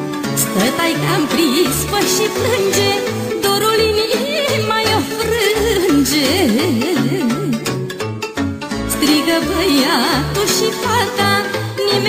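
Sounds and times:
folk band music: 0.0 - 12.0.

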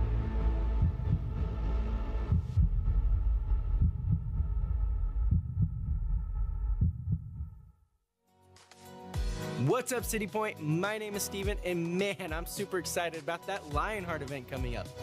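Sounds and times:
deep heartbeat-like thumps: 0.0 - 7.7.

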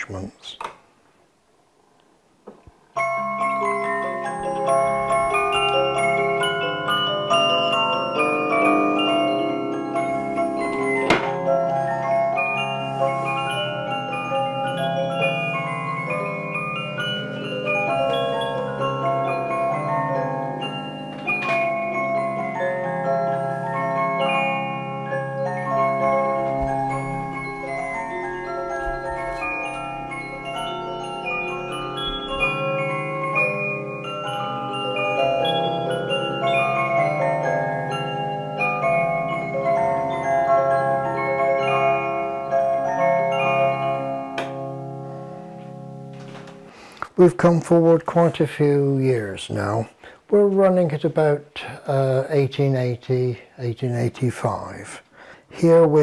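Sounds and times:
music box playing a tune: 3.0 - 50.6.

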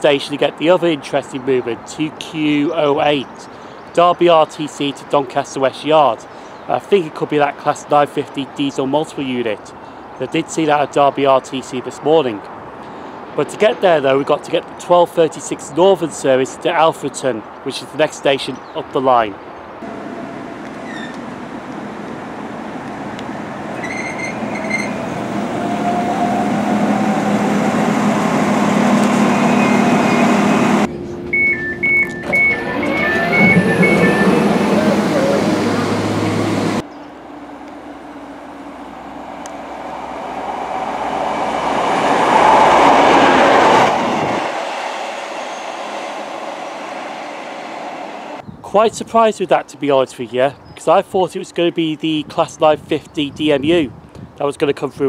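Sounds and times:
diesel train running: 19.8 - 48.4
two-tone door warning beeping: 23.7 - 25.2, 29.0 - 34.9.

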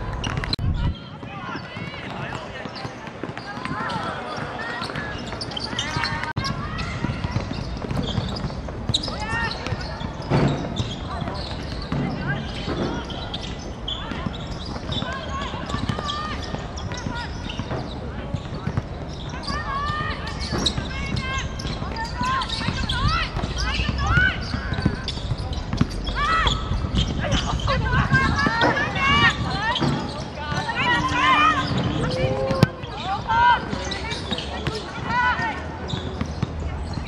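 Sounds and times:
footballers shouting: 9.0 - 36.4.

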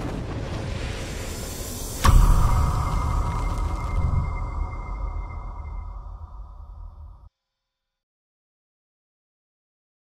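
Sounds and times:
deep rumble: 0.0 - 7.3.

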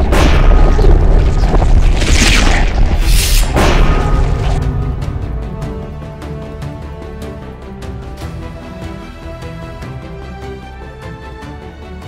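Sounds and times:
hissing whoosh: 1.8 - 3.7.

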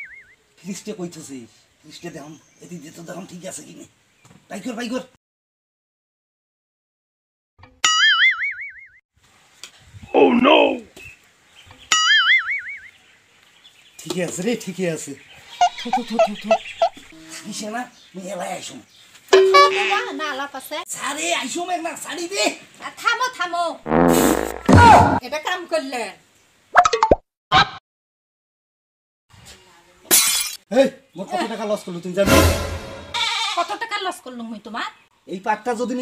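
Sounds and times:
cartoon boing sound effect: 19.4 - 20.1
comic plop sound effect: 26.8 - 27.2.

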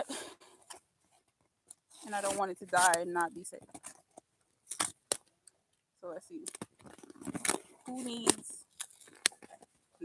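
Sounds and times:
cardboard packaging crackling: 6.4 - 9.7.

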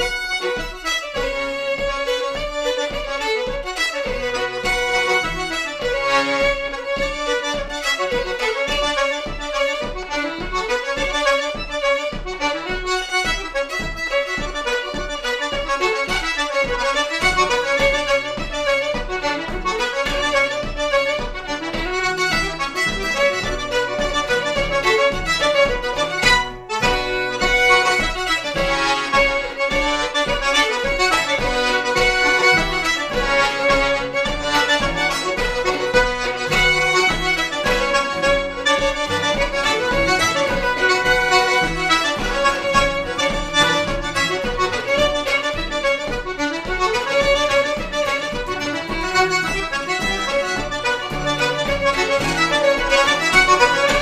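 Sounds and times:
button accordion: 0.0 - 54.0
fiddle: 0.0 - 54.0
strummed acoustic guitar: 0.0 - 54.0.

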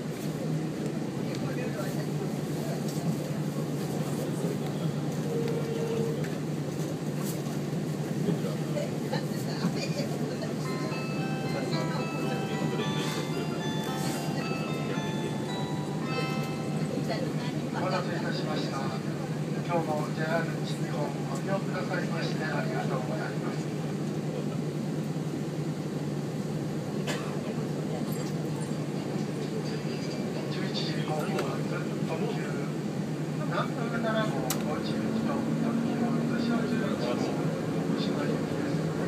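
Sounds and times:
train running drone: 0.0 - 39.0
electronic chime melody: 10.6 - 17.3
voice on address system: 10.6 - 17.8.

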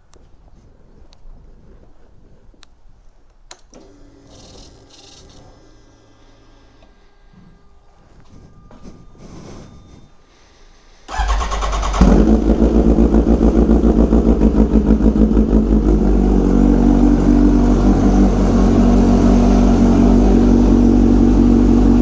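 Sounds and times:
motorcycle starter cranking: 11.1 - 13.2
motorcycle engine idling: 11.1 - 22.0.

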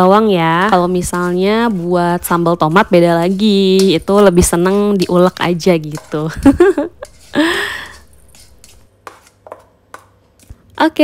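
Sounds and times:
spatula scraping metal bowl: 0.5 - 10.5.

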